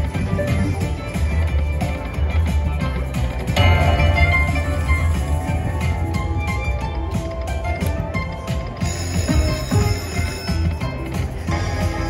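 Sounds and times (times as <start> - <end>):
slot machine bonus music: 3.2 - 12.0.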